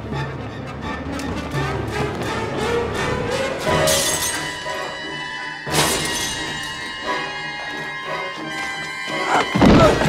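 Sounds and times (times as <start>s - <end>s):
tense orchestral music: 0.0s - 10.0s
glass shattering: 3.8s - 4.6s, 5.7s - 7.0s.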